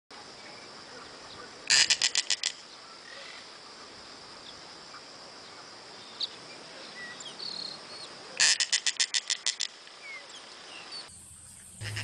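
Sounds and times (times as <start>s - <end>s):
high insect hum: 0.1s - 12.0s
bird rattling call: 1.7s - 2.6s, 8.4s - 9.8s.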